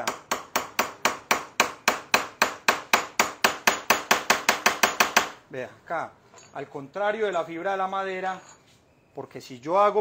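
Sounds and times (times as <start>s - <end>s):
hammer striking wood chisel: 0.0s - 5.4s.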